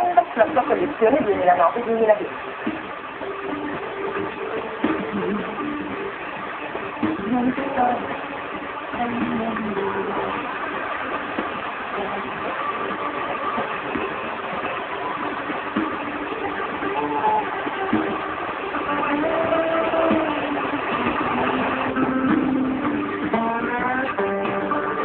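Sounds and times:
faint music from tv: 0.0s - 25.0s.

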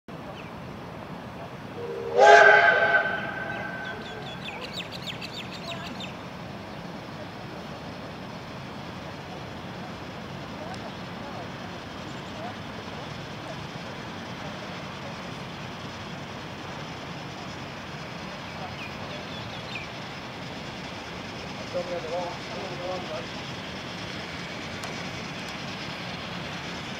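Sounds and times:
steam train rumbling and hissing: 0.1s - 26.9s.

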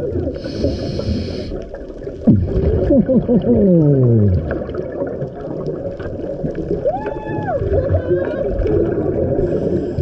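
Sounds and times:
muffled underwater wash: 0.0s - 10.0s.

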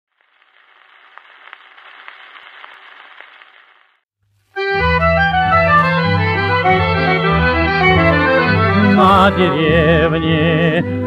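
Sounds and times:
record surface hiss and crackle: 0.1s - 4.6s.

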